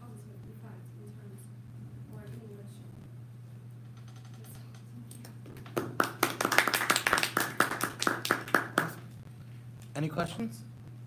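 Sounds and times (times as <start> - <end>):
steady low hum: 0.0 - 11.0
audience clapping: 5.6 - 9.1.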